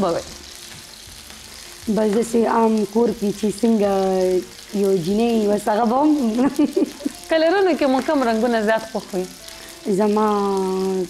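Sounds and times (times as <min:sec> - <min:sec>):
woman talking: 0:00.0 - 0:00.3, 0:01.9 - 0:11.0
patties sizzling in oil: 0:00.0 - 0:11.0.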